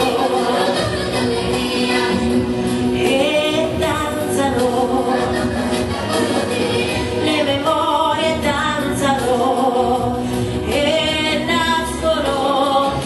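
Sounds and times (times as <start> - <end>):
instrumental accompaniment: 0.0 - 13.0
woman singing into a microphone: 0.0 - 13.0.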